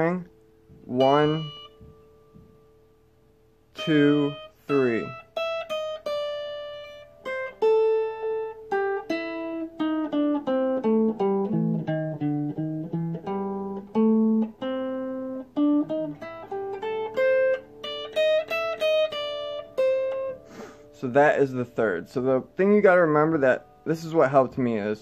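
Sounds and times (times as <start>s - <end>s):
electric guitar plucked notes: 0.0s - 24.9s.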